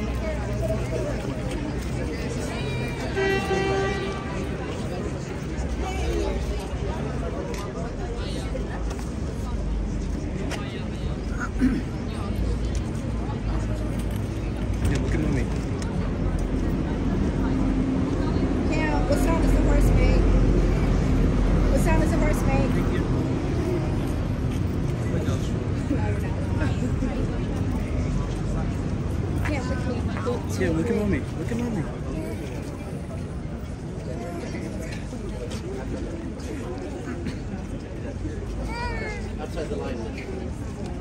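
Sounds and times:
indistinct crowd voices: 0.0s - 41.0s
traffic rumble: 0.0s - 41.0s.

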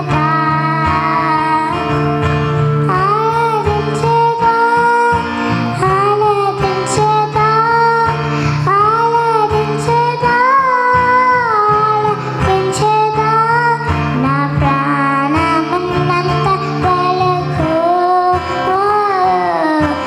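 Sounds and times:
girl singing into a microphone: 0.0s - 20.0s
instrumental accompaniment: 0.0s - 20.0s.

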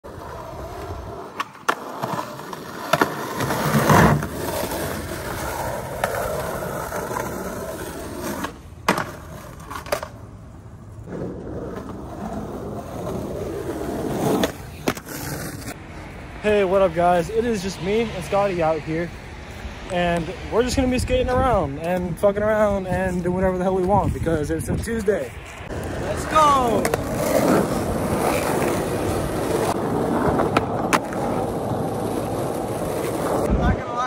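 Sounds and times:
skateboard wheels rolling on concrete: 0.0s - 34.0s
skateboard clacking on ground: 0.2s - 10.3s, 14.3s - 15.8s, 25.7s - 34.0s.

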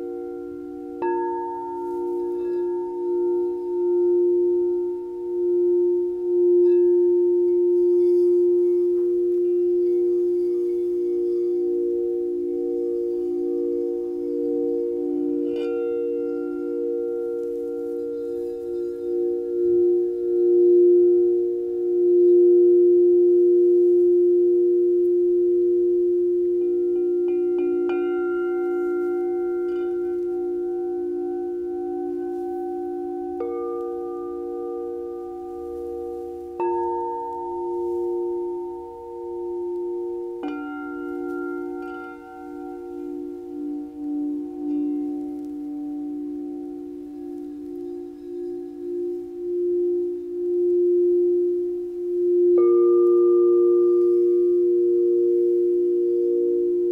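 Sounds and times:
crystal singing bowls ringing: 0.0s - 56.9s.

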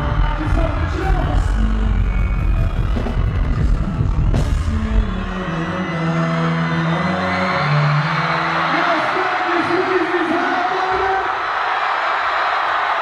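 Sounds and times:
heavy bass beat: 0.0s - 5.7s
live hip-hop music: 0.0s - 11.3s
crowd noise: 0.0s - 13.0s.

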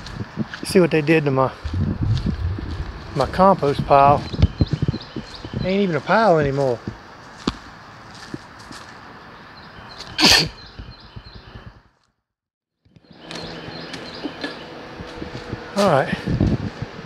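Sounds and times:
steady low room hum: 1.6s - 5.2s.

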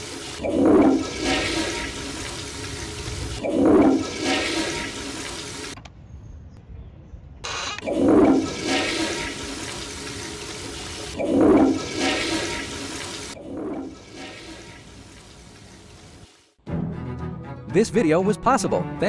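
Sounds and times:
toilet flushing: 0.0s - 5.8s, 7.8s - 16.5s.

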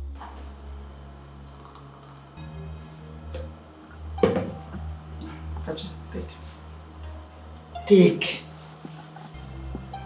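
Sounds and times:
quiet background music: 0.0s - 10.0s.

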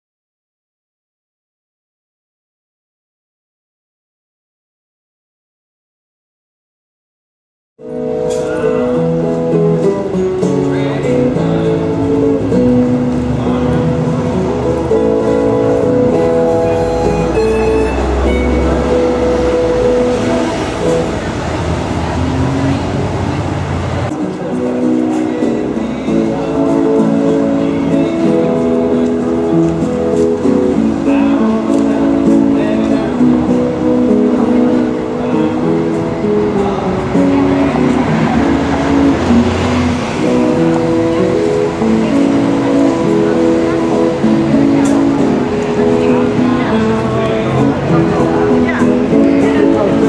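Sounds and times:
acoustic guitar single notes: 7.8s - 50.0s
passing cars: 7.8s - 50.0s
voices: 7.9s - 50.0s
harmonica chords: 13.8s - 20.8s.

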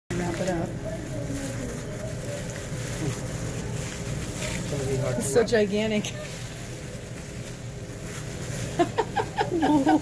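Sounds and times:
aluminium foil rustling: 0.1s - 10.0s
low background rumble: 0.1s - 10.0s
plastic gloves rustling: 0.1s - 10.0s.

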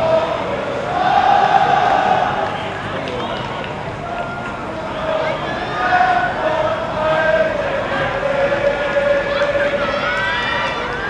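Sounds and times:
stadium crowd calling out: 0.0s - 11.0s.

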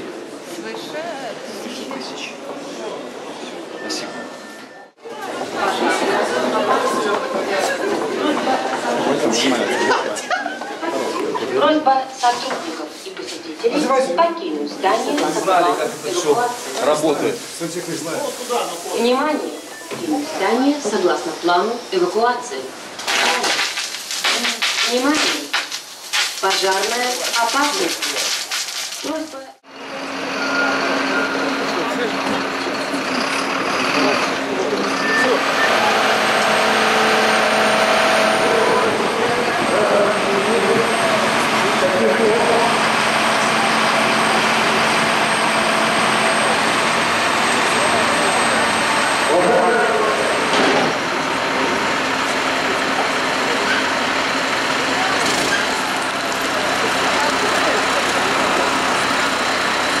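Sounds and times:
voices: 0.5s - 23.6s, 26.4s - 28.4s, 29.0s - 60.0s
diesel engine running: 29.7s - 60.0s.

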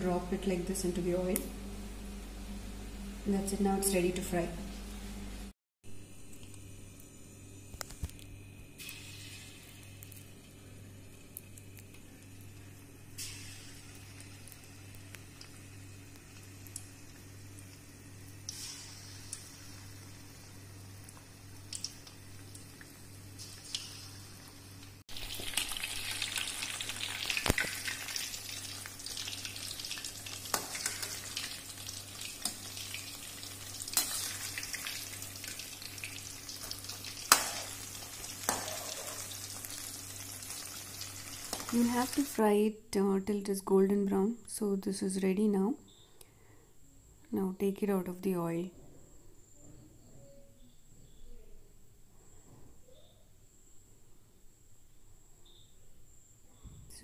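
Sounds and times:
low steady hum: 0.0s - 57.0s
batter sizzling in hot oil: 8.7s - 42.4s.

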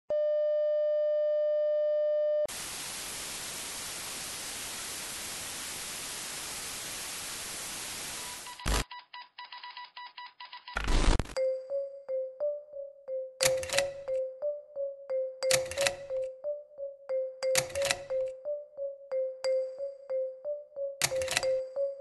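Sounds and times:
television static hiss: 2.5s - 8.8s.

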